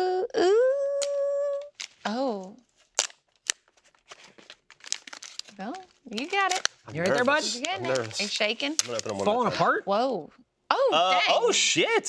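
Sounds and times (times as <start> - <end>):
packaging crinkling: 1.7 - 9.4
plastic packaging clicks: 2.8 - 9.3.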